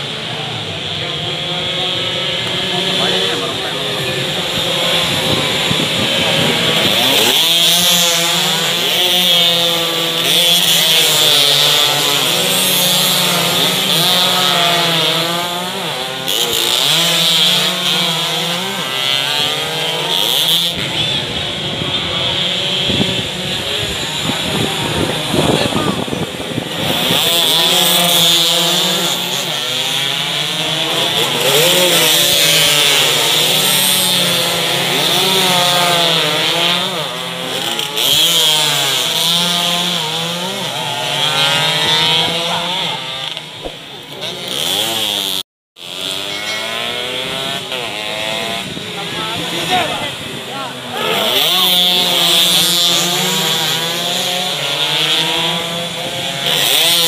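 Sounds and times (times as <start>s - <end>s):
motorcycles revving past: 0.0s - 57.0s.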